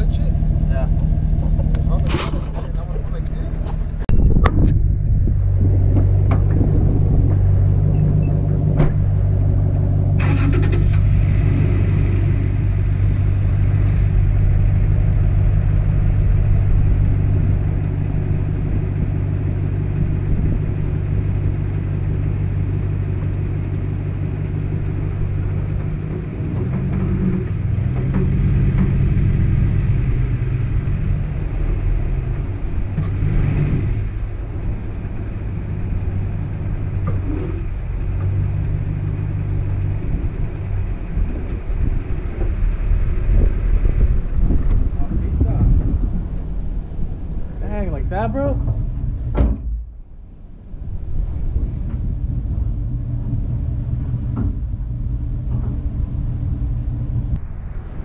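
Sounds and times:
pickup truck engine running: 0.0s - 58.0s
sharp knocks: 48.6s - 49.9s.

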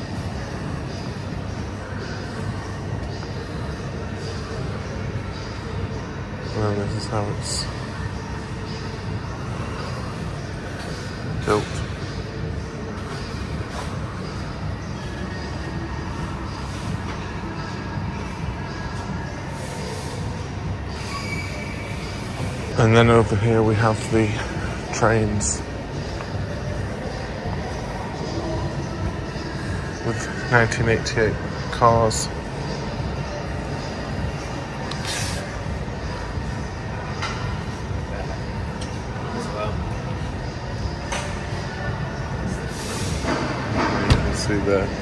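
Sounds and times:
faint background music: 0.0s - 45.0s
terminal hall background noise: 0.0s - 45.0s.

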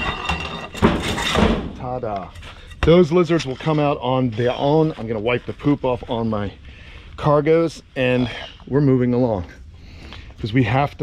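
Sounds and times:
panel scraping against frame: 0.0s - 3.4s.

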